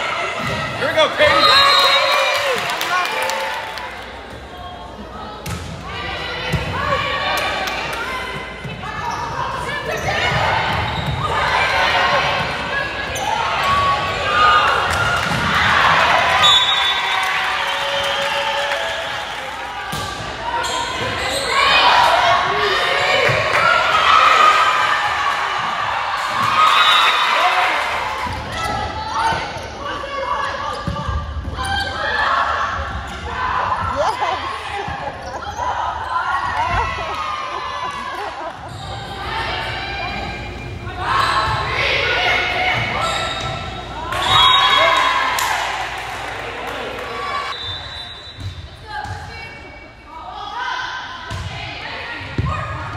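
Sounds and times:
players calling and shouting: 0.0 - 52.9.

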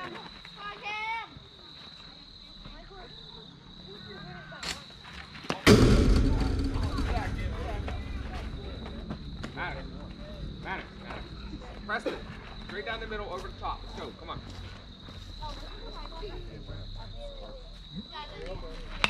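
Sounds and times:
low rumble of fence: 5.7 - 11.2.

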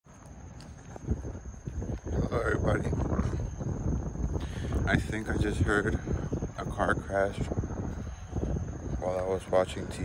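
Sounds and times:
wind buffeting microphone: 0.1 - 10.0
microphone bumps: 0.6 - 5.0.

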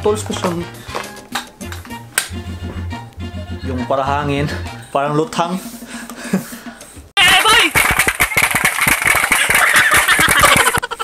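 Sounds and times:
distorted crackle: 7.2 - 10.8.

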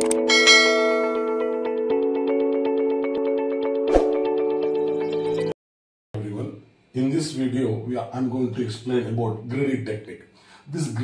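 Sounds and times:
notification bell ding: 0.3 - 1.6.

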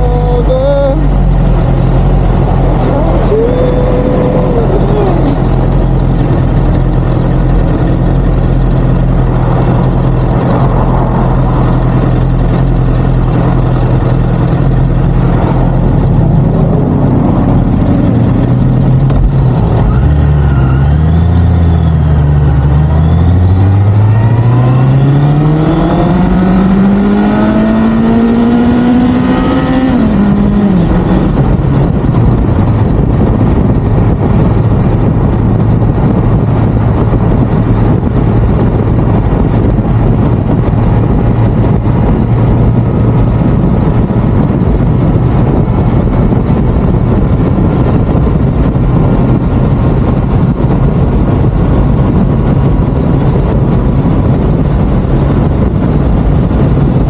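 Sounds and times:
motorcycle engine idling and revving: 0.0 - 57.0.

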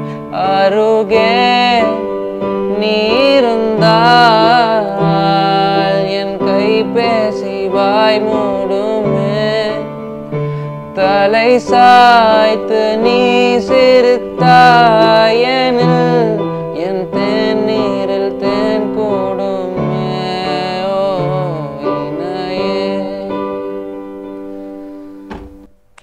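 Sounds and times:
man singing: 0.0 - 10.0, 10.9 - 23.9
held keyboard chords: 0.0 - 26.0.

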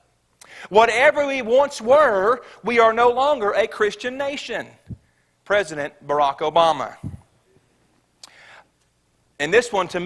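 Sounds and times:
man speaking into a microphone: 0.6 - 7.3, 9.4 - 10.0.

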